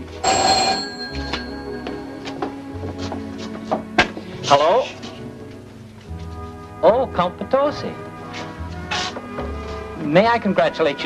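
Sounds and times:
background music: 0.0s - 11.0s
telephone bell ringing: 0.2s - 2.2s.

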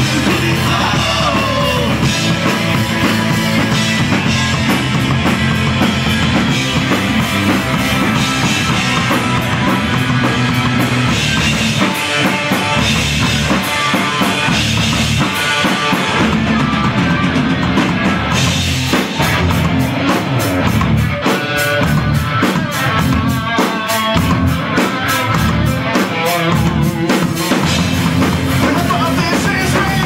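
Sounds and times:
punk band playing live: 0.0s - 30.0s.

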